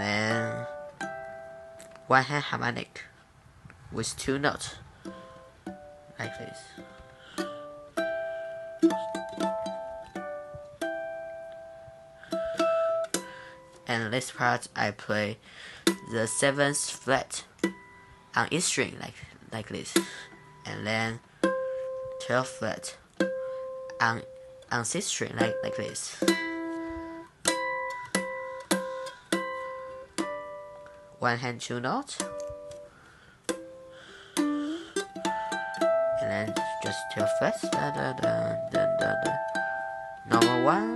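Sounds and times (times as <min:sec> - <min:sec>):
ukulele harmonics plucked: 0:00.0 - 0:03.2, 0:04.7 - 0:14.9, 0:15.9 - 0:18.6, 0:19.8 - 0:31.2, 0:32.2 - 0:40.9.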